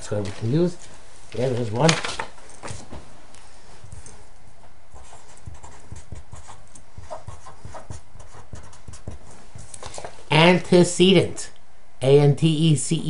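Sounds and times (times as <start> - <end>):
pen tapping and scratching on card: 5.3 - 9.6.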